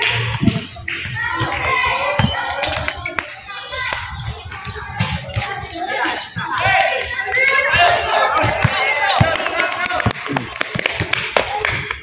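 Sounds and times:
basketball bouncing on concrete: 0:00.2 - 0:03.0, 0:03.9 - 0:12.0.

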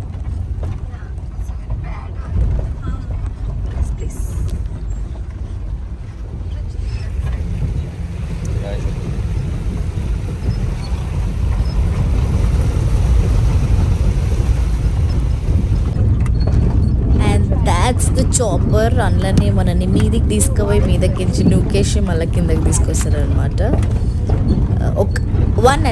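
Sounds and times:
van engine rumble: 0:00.0 - 0:25.9.

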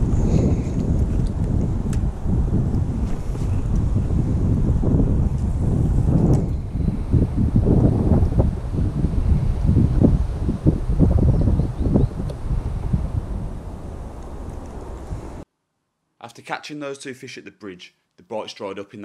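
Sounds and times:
wind buffeting microphone: 0:00.0 - 0:15.4.

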